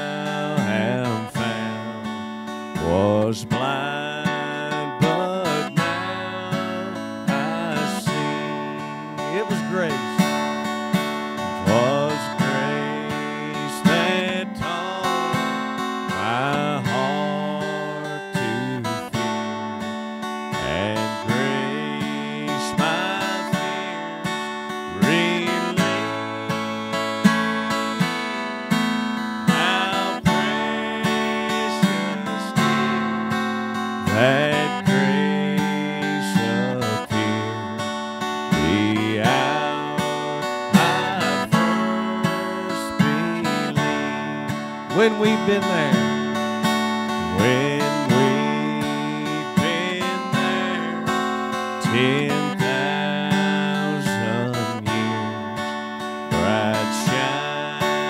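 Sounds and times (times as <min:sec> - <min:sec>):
acoustic guitar strumming hymn: 0:00.0 - 0:58.0.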